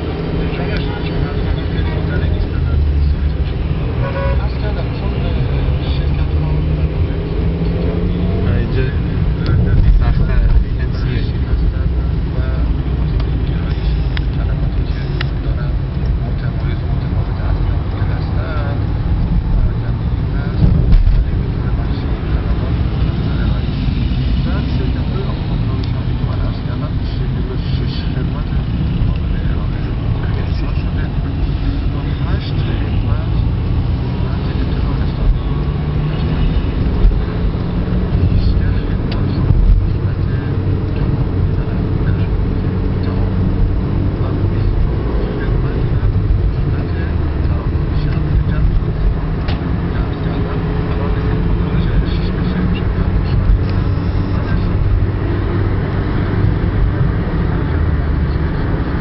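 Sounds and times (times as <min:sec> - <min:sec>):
car engine and tyre rumble: 0:00.0 - 0:59.0
surrounding buses and cars: 0:00.0 - 0:59.0.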